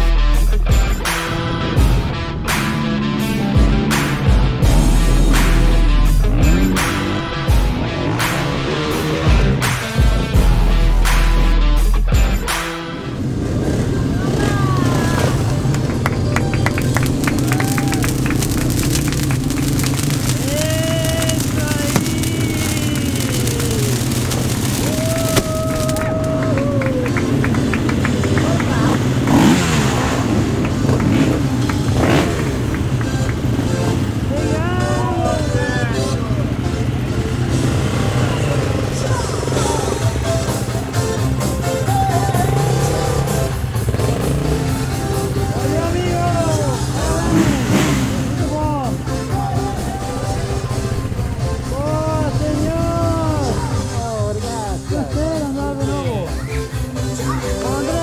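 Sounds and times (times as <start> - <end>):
dirt bike engines: 0.0 - 58.0
music: 0.0 - 58.0
people shouting and whooping: 16.2 - 27.4, 49.2 - 50.8.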